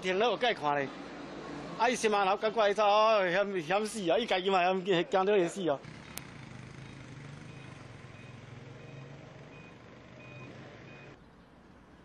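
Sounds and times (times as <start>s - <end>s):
vehicle reversing alarm beeps: 6.8s - 11.2s.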